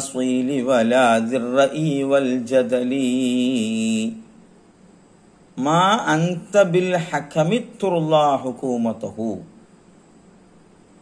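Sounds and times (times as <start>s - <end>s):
man chanting verse: 0.0s - 4.3s, 5.6s - 9.6s.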